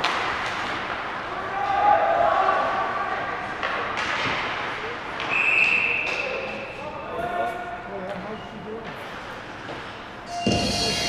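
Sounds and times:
ice rink background noise: 0.0s - 11.0s.

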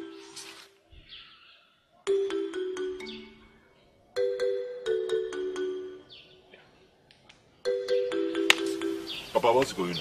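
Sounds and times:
bell-like keyboard notes: 2.1s - 6.4s, 7.6s - 9.6s.

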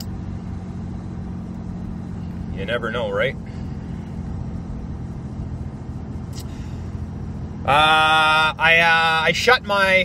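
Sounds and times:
low hum: 0.0s - 9.7s
car engine rumble inside cabin: 0.0s - 10.0s.

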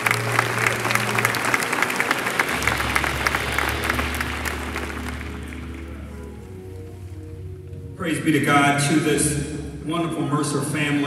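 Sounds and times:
congregation applauding: 0.0s - 7.1s
soft music of low chords: 0.0s - 11.0s.

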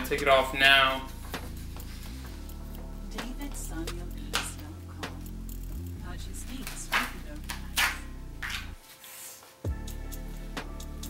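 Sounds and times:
background music low tones: 0.0s - 11.0s
paper napkin rustling: 6.6s - 9.7s.

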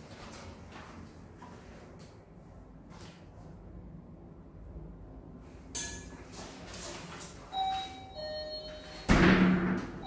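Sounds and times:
two-note doorbell chime: 7.6s - 9.1s.

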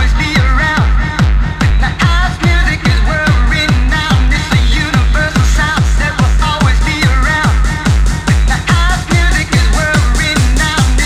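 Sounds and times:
fast kick drum: 0.0s - 11.0s.

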